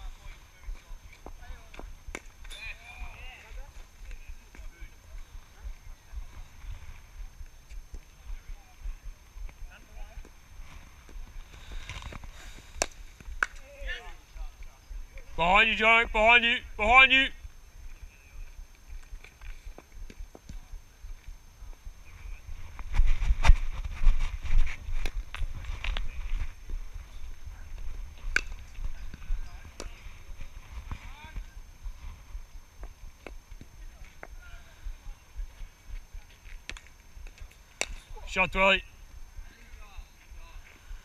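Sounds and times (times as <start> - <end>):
footsteps on grass: 3.0 - 13.4, 17.4 - 38.1
wind rumbling on microphone: 17.4 - 37.7.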